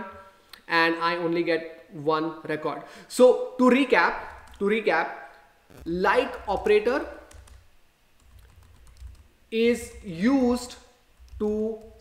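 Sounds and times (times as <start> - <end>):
keyboard typing: 4.2 - 4.6, 5.9 - 9.3, 11.2 - 12.0.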